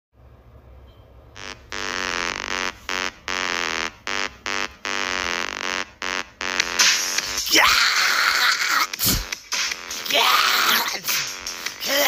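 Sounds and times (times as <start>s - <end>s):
buzzy synth chord stabs: 1.4s - 7.5s.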